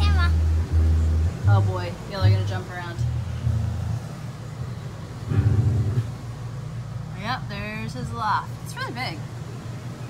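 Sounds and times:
child's voice: 0.0 - 0.4.

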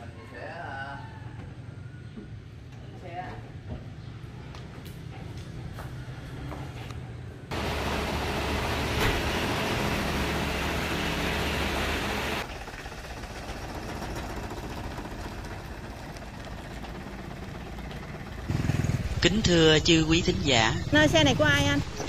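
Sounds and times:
road noise: 1.3 - 22.0
diesel truck engine running: 7.5 - 22.0.

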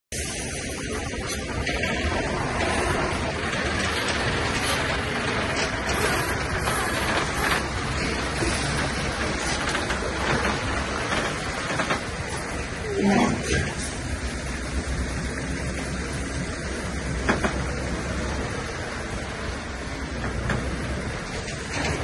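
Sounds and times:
truck diesel engine passing: 0.2 - 21.7.

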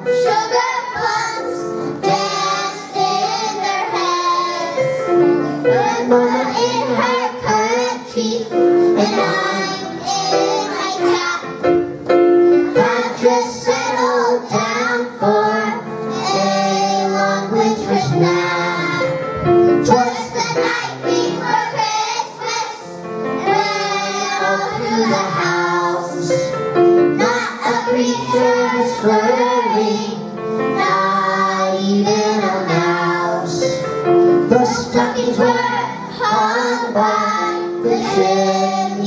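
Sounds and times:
children's choir singing: 0.0 - 39.0
musical accompaniment: 0.0 - 39.0.

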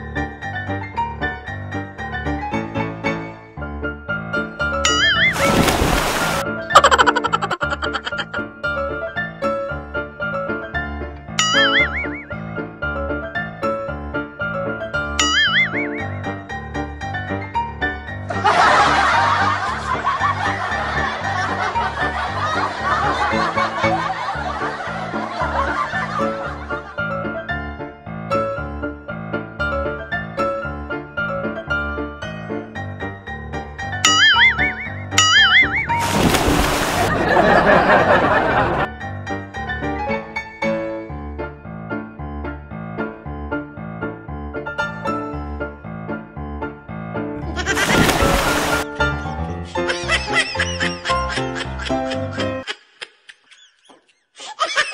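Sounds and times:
light piano music: 0.0 - 52.7
loud water splash: 5.2 - 6.4, 35.9 - 37.6, 47.7 - 48.9
people snickering and chuckling: 6.8 - 8.4, 18.3 - 26.8, 37.0 - 38.9, 49.7 - 54.9.

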